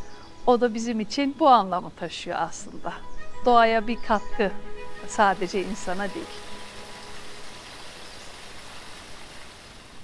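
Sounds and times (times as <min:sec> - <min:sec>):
waterfall rushing: 0:04.8 - 0:10.0.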